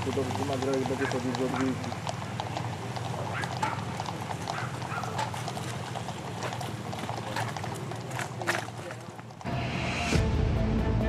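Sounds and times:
horse hooves on pavement: 0:00.0 - 0:09.5.

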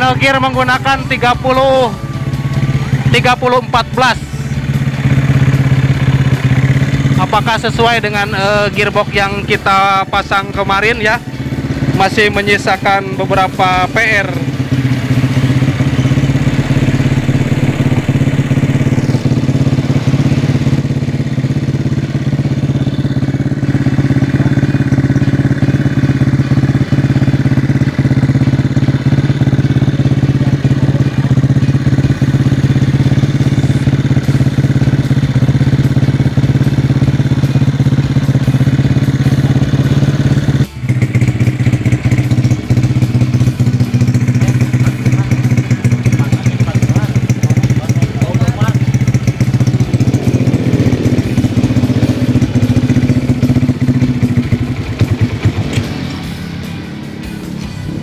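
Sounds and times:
motorcycle engine idling: 0:00.0 - 0:58.0.

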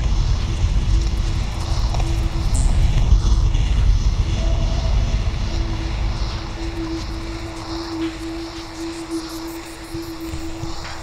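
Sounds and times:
deep rumbling drone: 0:00.0 - 0:11.0.

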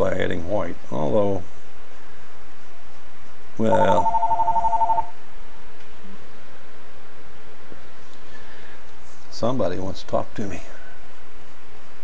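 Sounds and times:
telephone ringing: 0:03.7 - 0:05.1.

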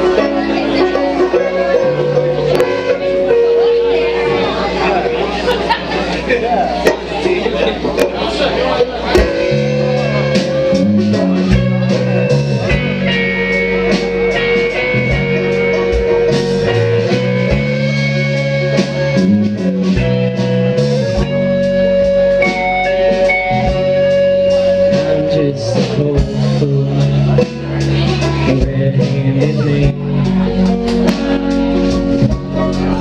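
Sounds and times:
banjo: 0:00.0 - 0:33.0
bass guitar: 0:00.0 - 0:33.0
drum kit: 0:00.0 - 0:33.0
electric guitar: 0:00.0 - 0:33.0.

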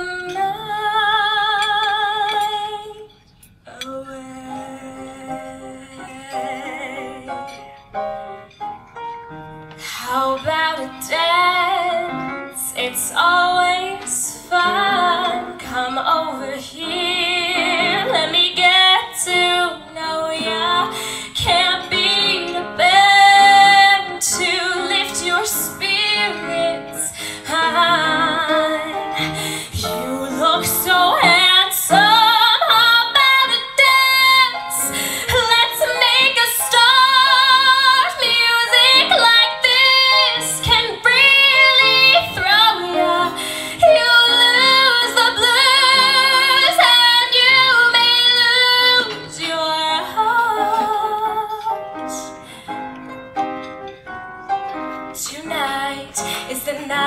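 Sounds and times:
woman singing show tune: 0:03.7 - 0:07.6, 0:10.0 - 0:52.4
instrumental accompaniment: 0:04.6 - 0:57.0.

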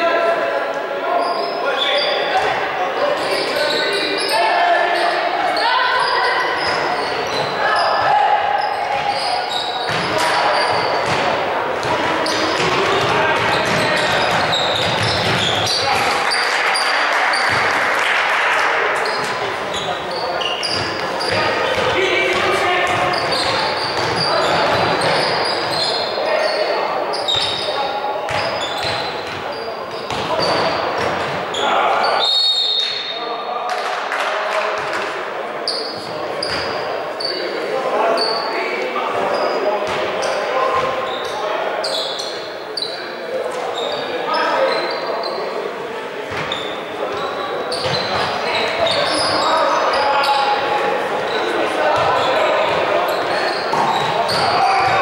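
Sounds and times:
players shouting: 0:00.0 - 0:32.3
shoes squeaking: 0:03.1 - 0:17.7, 0:19.0 - 0:33.2, 0:35.7 - 0:45.6, 0:46.3 - 0:55.0
ball bouncing on wooden court: 0:09.8 - 0:15.8, 0:20.6 - 0:25.8.

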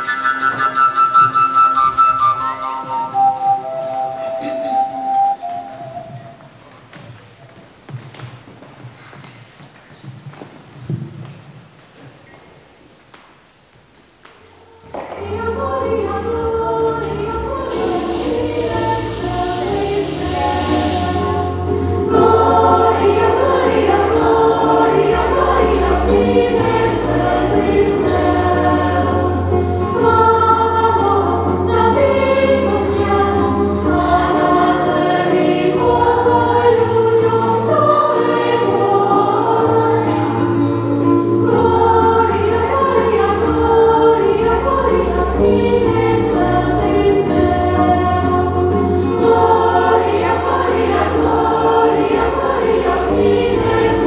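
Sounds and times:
instrumental accompaniment: 0:00.0 - 0:06.6, 0:14.7 - 0:54.0
girls choir singing: 0:14.5 - 0:54.0
hiss: 0:17.5 - 0:23.3.

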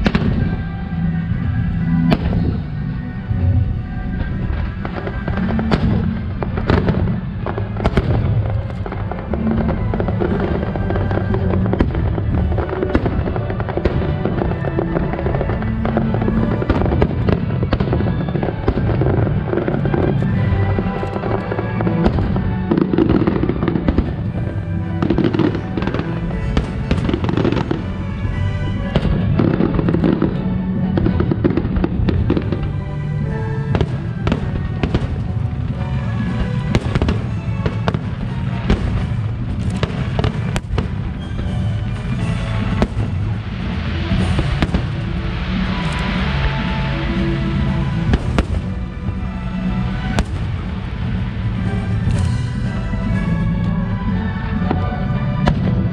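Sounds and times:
fireworks bangs and crackles: 0:00.0 - 0:55.9
music playing: 0:00.0 - 0:55.9.

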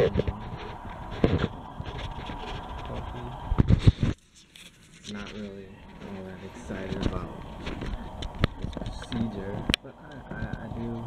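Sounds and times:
camera handling bumps and rustles: 0:00.0 - 0:11.0.

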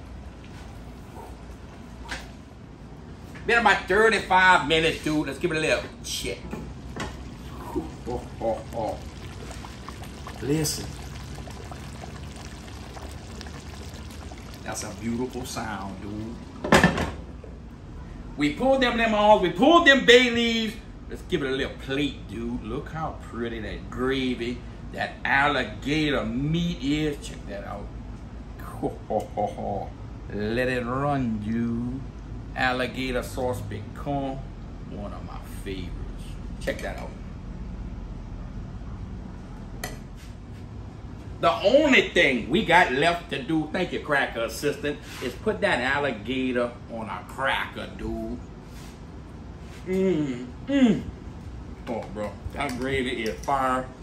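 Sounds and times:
low steady hum: 0:00.0 - 0:54.0
thick sauce bubbling in a pot: 0:06.7 - 0:16.8.

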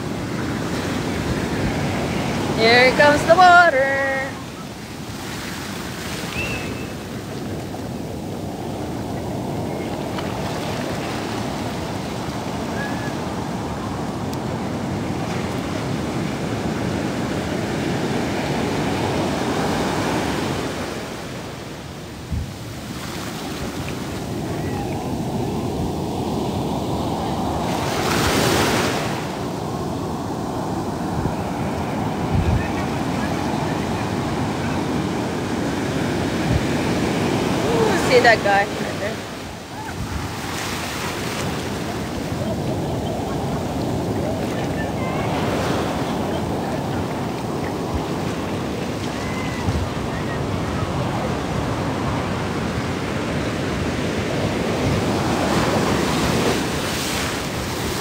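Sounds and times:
waves breaking on sand: 0:00.0 - 0:58.0
wind buffeting microphone: 0:23.7 - 0:38.4, 0:39.7 - 0:58.0.

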